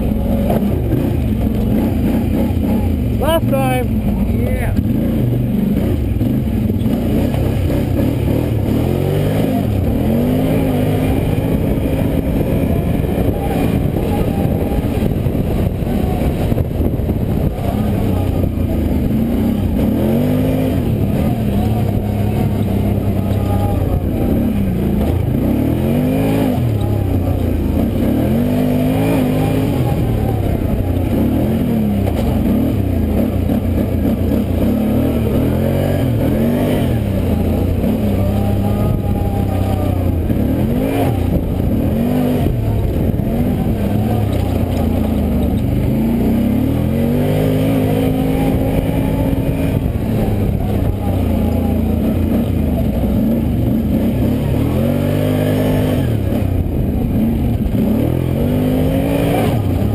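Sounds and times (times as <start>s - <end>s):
quad engine revving: 0.0s - 59.9s.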